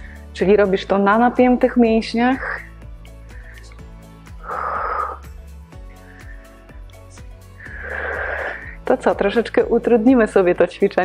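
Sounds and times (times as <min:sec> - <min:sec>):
background music with steady beat: 0:00.0 - 0:11.0
woman's breathy exhale: 0:04.4 - 0:05.3, 0:06.0 - 0:06.6, 0:07.6 - 0:08.8.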